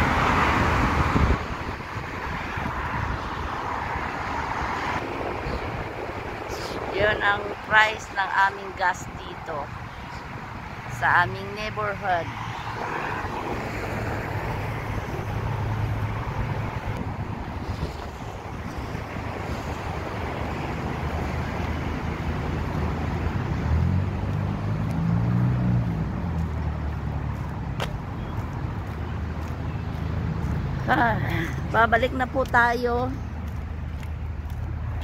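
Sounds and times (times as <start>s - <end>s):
cars passing: 0.0s - 35.0s
wind rumbling on microphone: 0.0s - 35.0s
vehicle engine passing: 10.8s - 32.0s.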